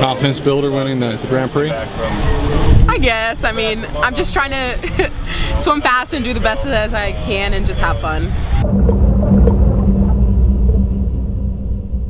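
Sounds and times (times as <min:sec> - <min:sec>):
low rumble with hum: 0:08.4 - 0:12.0.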